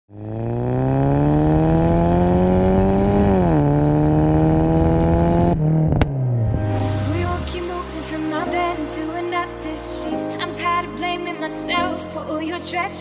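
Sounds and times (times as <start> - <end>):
car engine accelerating: 0.1 - 8.1.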